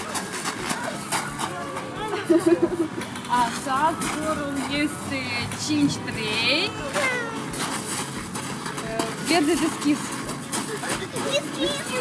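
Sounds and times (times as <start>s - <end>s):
child squealing: 6.8s - 7.6s.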